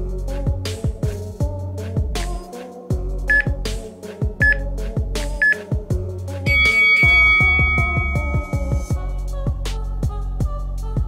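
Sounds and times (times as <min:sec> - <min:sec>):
background music with steady beat: 0:00.0 - 0:11.0
timer countdown beeps: 0:03.3 - 0:03.6, 0:04.4 - 0:04.7, 0:05.4 - 0:05.6, 0:06.5 - 0:09.0
long loud beep: 0:06.5 - 0:08.9.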